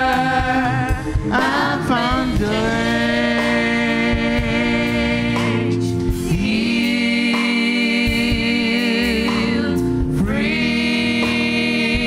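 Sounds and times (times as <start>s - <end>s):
person singing gospel song: 0.0s - 12.0s.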